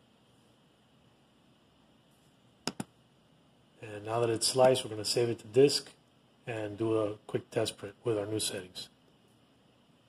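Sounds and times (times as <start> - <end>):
computer mouse double-click: 2.7 - 2.9.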